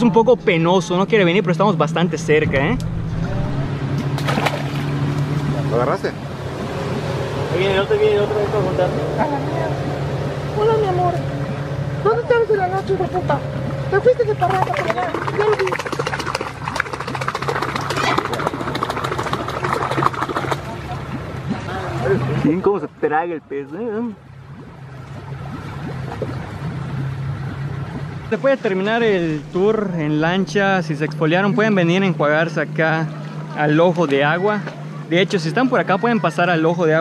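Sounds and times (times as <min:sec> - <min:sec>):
outboard motor idling: 0:00.0 - 0:37.0
water splashes: 0:00.0 - 0:37.0
indistinct voices: 0:01.7 - 0:04.1.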